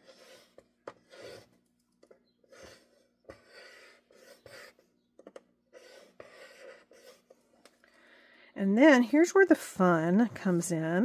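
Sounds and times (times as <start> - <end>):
scoring tool scraping cardstock: 0.0 - 1.6, 2.5 - 4.8.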